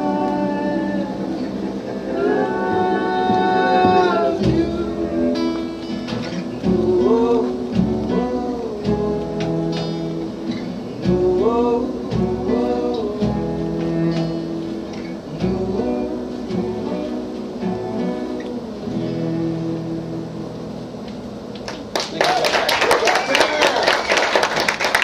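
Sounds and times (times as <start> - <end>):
cello: 0.0 - 20.8
acoustic guitar strumming: 0.0 - 21.9.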